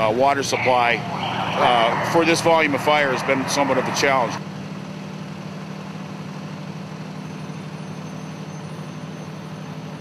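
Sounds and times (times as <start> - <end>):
diesel engine droning: 0.0 - 10.0.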